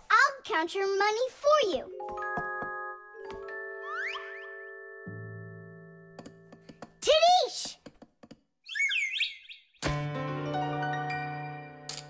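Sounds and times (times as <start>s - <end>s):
falling chirp: 8.6s - 9.8s.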